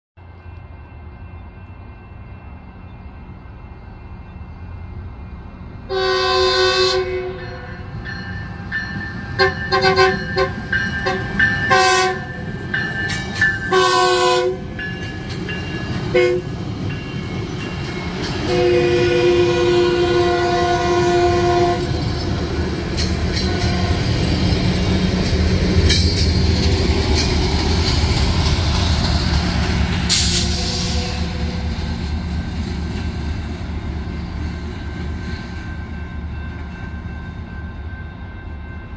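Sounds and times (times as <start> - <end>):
diesel locomotive passing: 0.2 - 38.9
train rumbling: 0.2 - 38.9
train horn blast: 5.9 - 7.9, 9.4 - 12.4, 13.7 - 14.8, 16.1 - 16.6, 18.4 - 22.0, 23.3 - 24.3, 30.1 - 31.8.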